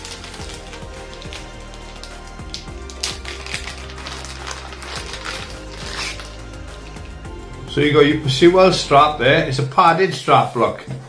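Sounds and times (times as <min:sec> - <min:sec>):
plastic packaging crinkling: 0:00.0 - 0:07.3
quiet background music: 0:00.0 - 0:11.0.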